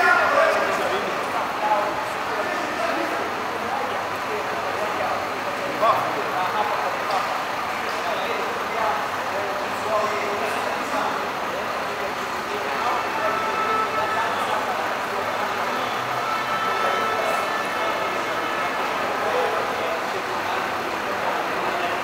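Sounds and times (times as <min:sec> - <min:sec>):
chatter of many voices: 0:00.0 - 0:22.0
coach engine idling: 0:00.0 - 0:22.0.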